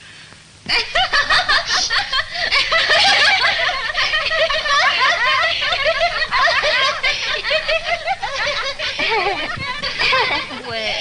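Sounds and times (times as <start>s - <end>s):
people laughing: 0.7s - 11.0s.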